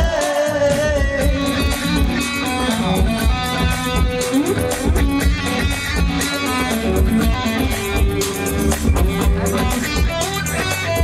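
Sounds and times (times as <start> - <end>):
electric guitar band music: 0.0 - 11.0.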